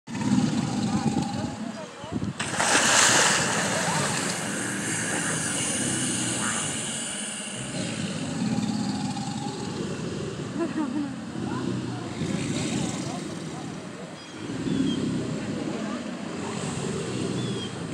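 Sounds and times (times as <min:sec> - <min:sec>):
splashing and churning water: 0:00.1 - 0:10.4
alligators bellowing: 0:00.1 - 0:17.9.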